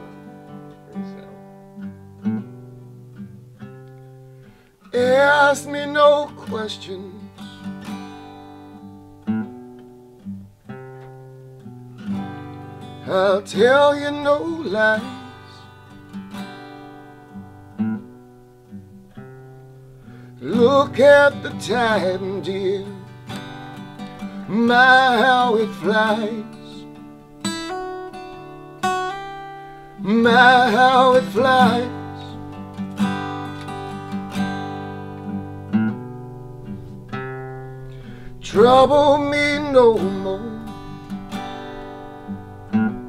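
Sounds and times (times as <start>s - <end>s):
acoustic guitar picking: 0.0s - 43.0s.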